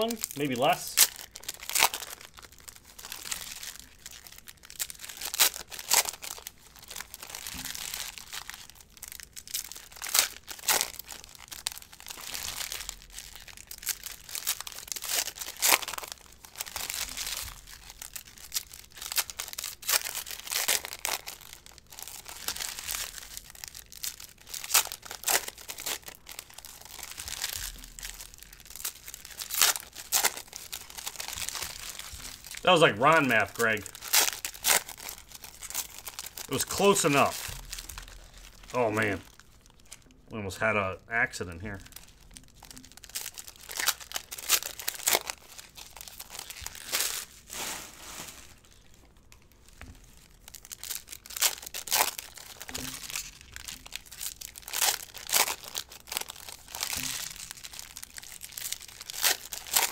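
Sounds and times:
foil wrappers tearing and crinkling: 0.0 - 40.8, 41.4 - 59.9.

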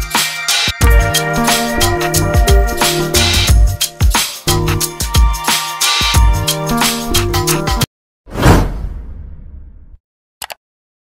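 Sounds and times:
whoosh sound effect: 8.3 - 9.9.

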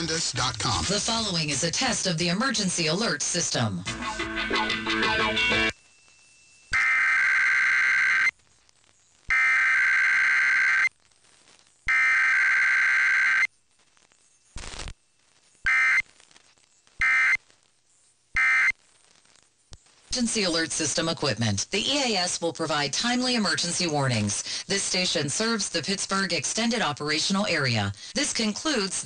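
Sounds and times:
faint radio static: 0.0 - 29.0
screeching digital data bursts: 5.7 - 8.4, 14.2 - 16.0.

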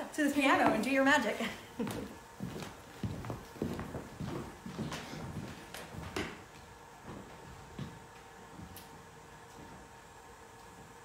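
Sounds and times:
footsteps across a room: 0.0 - 11.0.

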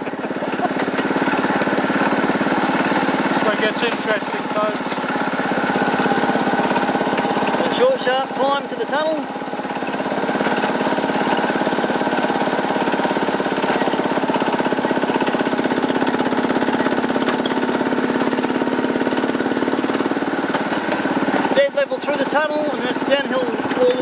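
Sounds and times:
miniature locomotive engine throbbing: 0.0 - 24.0.

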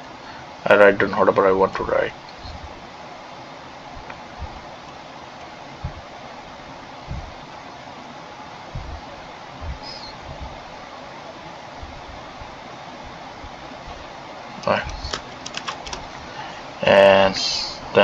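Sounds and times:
steady faint hiss: 0.0 - 18.0
soft low thumps: 4.0 - 5.0, 5.8 - 6.1, 7.0 - 7.4, 8.7 - 10.7.

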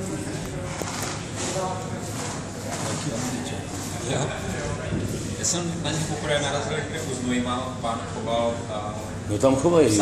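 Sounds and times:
shopping arcade background noise: 0.0 - 10.0.

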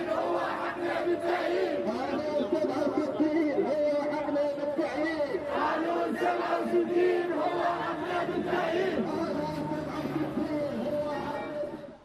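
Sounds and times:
crowd shouting together: 0.0 - 2.0, 5.4 - 11.8.

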